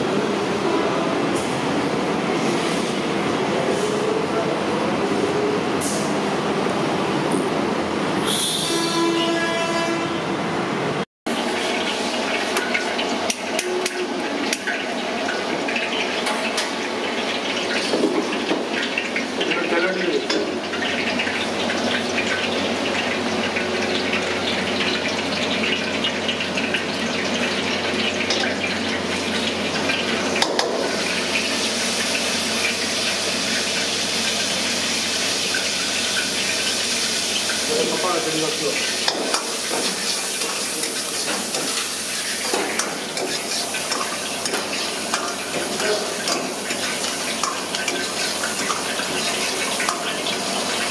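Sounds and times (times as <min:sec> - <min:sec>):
horn-like pitched tone: 0:00.5 - 0:01.3, 0:08.2 - 0:10.3, 0:13.6 - 0:14.2
hot oil hissing in a wok: 0:08.2 - 0:08.8, 0:16.8 - 0:50.9.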